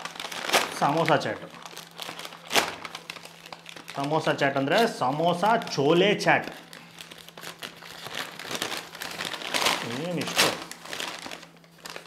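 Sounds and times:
paper bag crinkling: 0.0 - 12.0.

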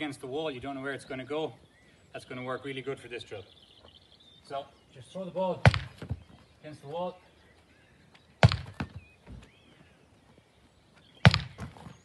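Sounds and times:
ball caught in gloves: 5.6 - 6.2, 8.4 - 9.0, 11.2 - 11.8
ball thumping against wall: 5.6 - 6.3, 8.4 - 9.0, 11.3 - 11.9.

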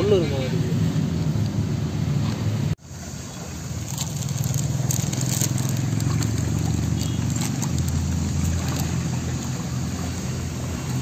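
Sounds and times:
plastic bag crinkling: 3.8 - 8.9.

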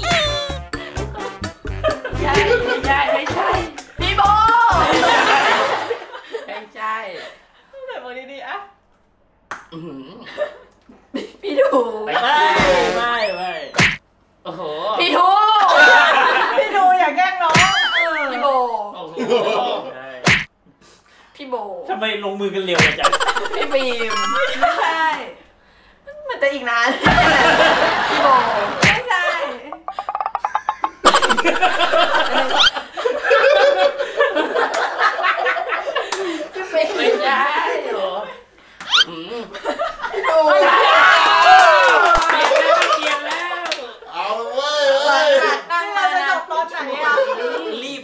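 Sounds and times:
people chuckling: 0.0 - 3.2, 22.9 - 24.8, 27.0 - 37.1
group of people laughing: 1.6 - 6.5, 15.6 - 16.9, 19.1 - 20.0, 23.0 - 25.0, 26.9 - 43.8
people talking: 2.1 - 5.8, 11.6 - 13.8, 22.7 - 25.3.

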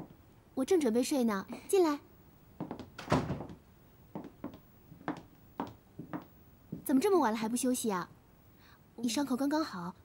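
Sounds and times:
door shutting thunk: 2.8 - 3.6.

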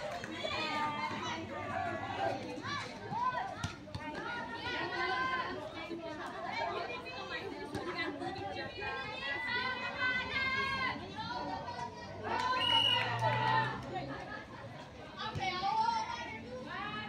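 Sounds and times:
girls shouting and chattering: 0.0 - 17.0.

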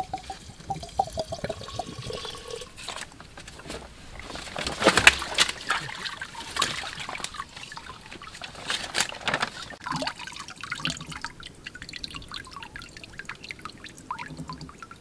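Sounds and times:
water trickling and dripping: 0.0 - 2.9, 4.2 - 15.0
rice swishing in water: 4.1 - 14.6.

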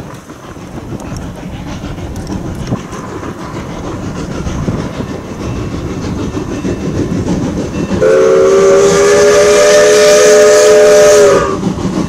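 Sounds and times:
steam hissing: 0.0 - 12.0
steam locomotive chime whistle: 7.7 - 11.7.

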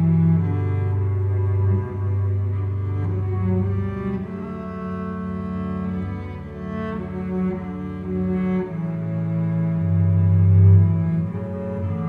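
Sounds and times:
bowed cello: 0.0 - 12.0.

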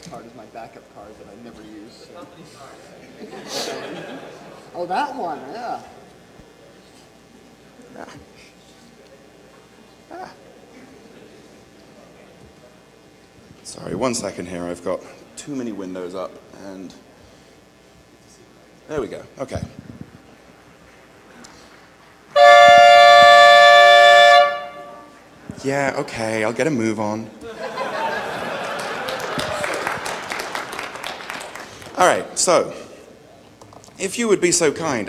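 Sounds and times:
loud reedy horn tone: 22.3 - 25.3.

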